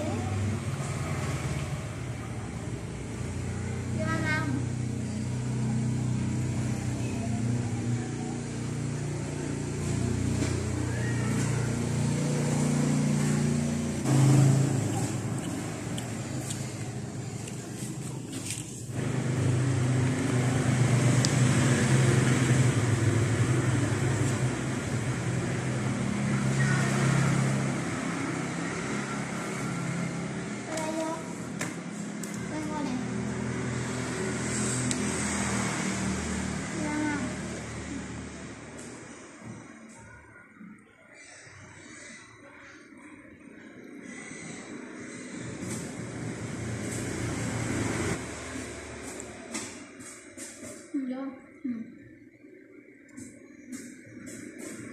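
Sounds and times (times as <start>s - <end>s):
low motor hum: 0.0s - 39.8s.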